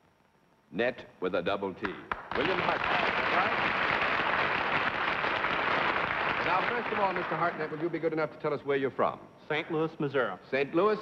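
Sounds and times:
audience applauding: 2.1s - 8.0s.

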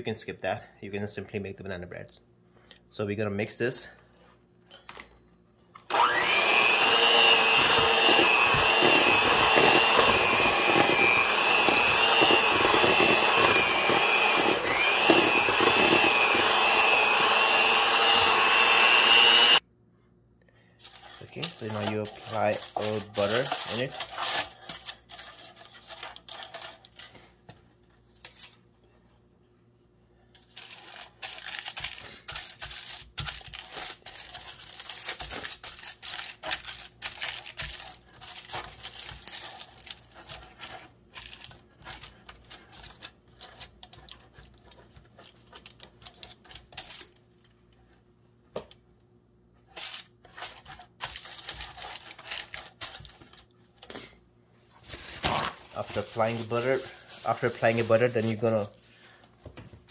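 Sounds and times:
aluminium foil crinkling: 20.8s - 28.6s, 30.4s - 48.0s, 49.6s - 53.9s, 54.8s - 59.2s.

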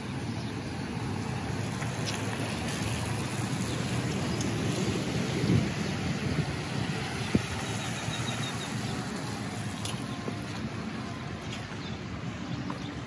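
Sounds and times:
tyres hissing on wet road: 0.0s - 12.2s.

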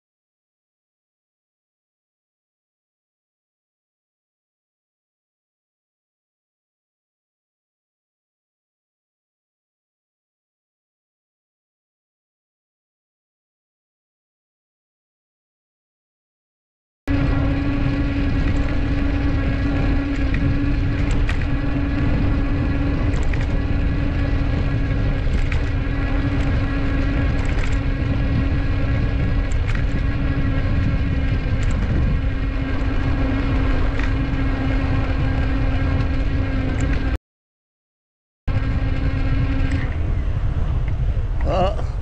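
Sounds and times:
constant hum: 17.1s - 37.2s, 38.5s - 42.0s
wind rumbling on microphone: 17.1s - 37.2s, 38.5s - 42.0s.

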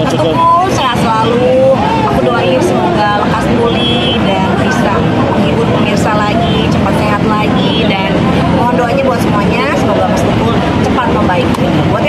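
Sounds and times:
woman talking: 0.0s - 12.0s.

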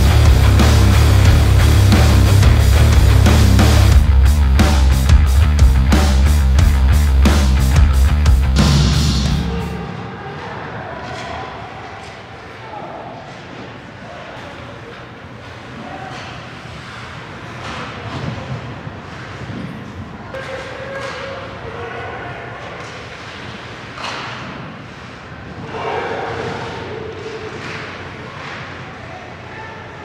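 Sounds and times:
players shouting: 0.0s - 14.9s, 25.5s - 30.0s.

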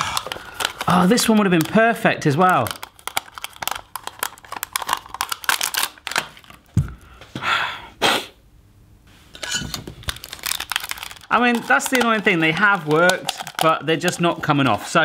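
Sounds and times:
gelatine crackling and crinkling: 0.0s - 7.0s, 9.7s - 15.0s.

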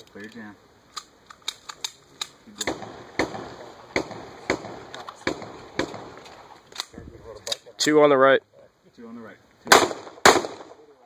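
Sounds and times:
handgun shots with echo: 2.6s - 6.2s.

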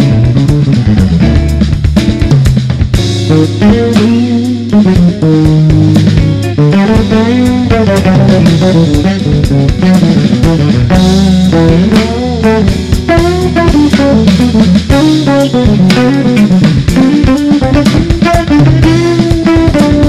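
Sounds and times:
drum kit playing: 0.0s - 20.0s
electric guitar: 0.0s - 20.0s
finger-plucked electric bass: 0.0s - 20.0s.

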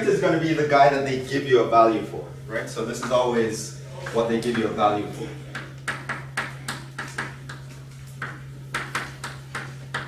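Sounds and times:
steady low hum: 0.0s - 10.0s
chalk tapping on chalkboard: 5.5s - 10.0s.

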